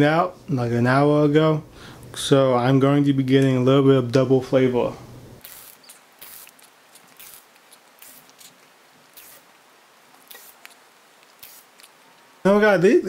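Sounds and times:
e-cigarette crackling and hissing: 5.4 - 12.0.

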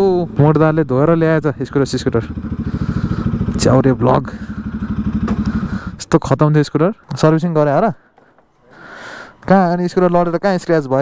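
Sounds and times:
motorcycle engine idling: 0.0 - 6.7.

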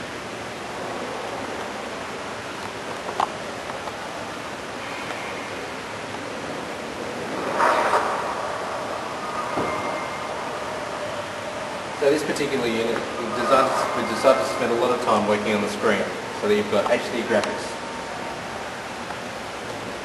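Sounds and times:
hall background hiss: 0.0 - 20.0.

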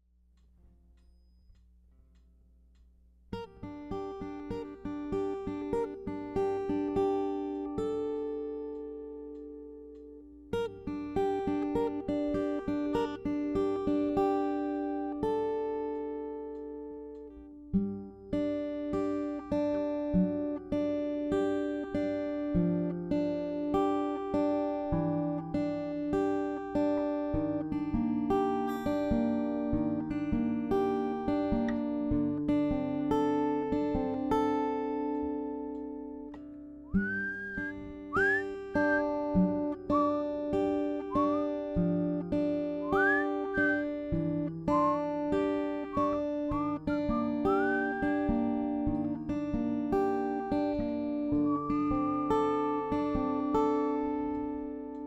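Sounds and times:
acoustic guitar fingerpicking: 3.3 - 55.0.

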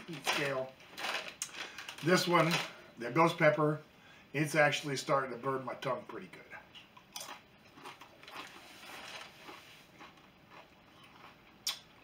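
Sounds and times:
tortilla chip crunching: 0.0 - 2.8, 7.1 - 12.0.

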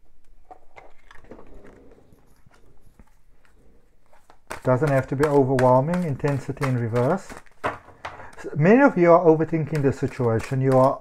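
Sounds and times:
cards rustling: 0.4 - 11.0
cards tapping: 2.6 - 11.0.

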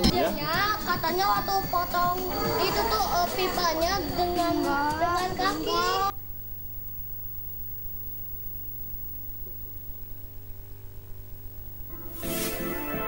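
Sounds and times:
faint low hum: 0.0 - 12.1.

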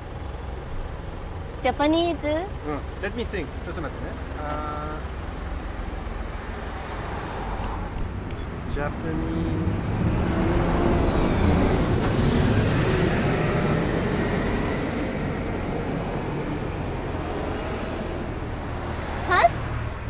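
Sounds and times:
traffic rumble: 0.0 - 20.0
vehicle passing by: 6.3 - 20.0.

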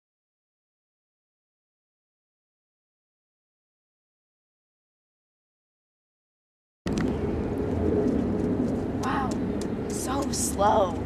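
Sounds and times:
low outdoor rumble: 6.9 - 11.0.

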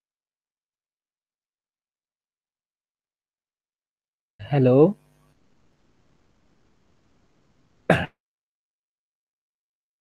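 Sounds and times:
person clearing throat: 7.9 - 8.2.

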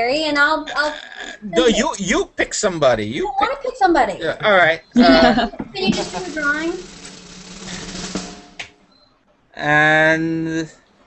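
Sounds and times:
rapid drum roll: 5.0 - 8.9.

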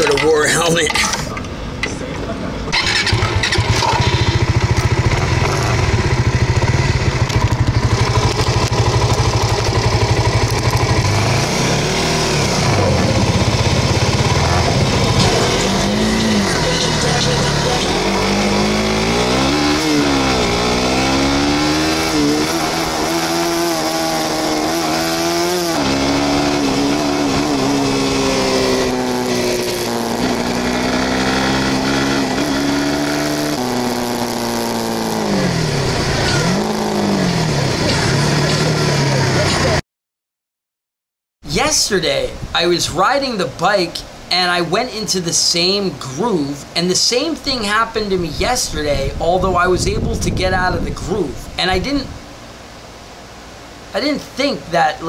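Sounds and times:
motorcycle engine accelerating: 2.7 - 39.8.

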